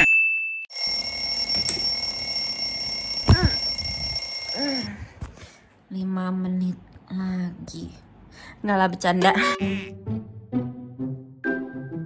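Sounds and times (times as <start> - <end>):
alarm ringing: 0.7 - 4.9
person groaning sleepily: 3.3 - 3.7, 4.6 - 4.9.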